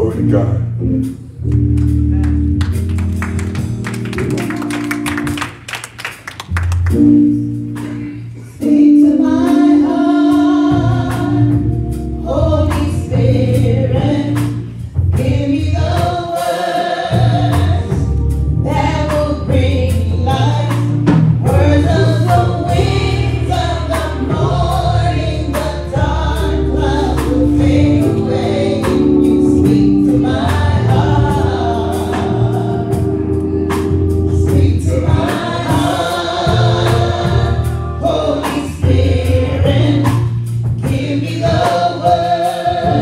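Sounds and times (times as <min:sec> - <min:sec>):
low bass notes: 0:00.0 - 0:05.7, 0:06.4 - 0:16.3, 0:17.0 - 0:43.0
percussion hits: 0:01.5 - 0:08.5
group singing gospel: 0:06.9 - 0:43.0.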